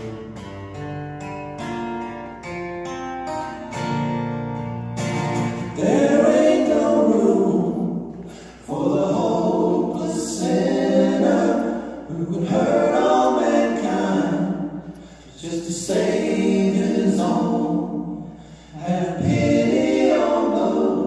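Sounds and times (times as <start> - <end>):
acoustic guitars picking: 0.0 - 21.0
voices singing together: 5.4 - 21.0.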